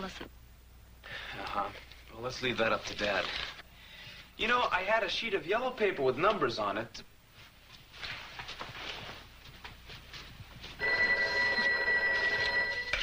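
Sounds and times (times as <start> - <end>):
desk telephone bell ringing: 10.8 - 13.0.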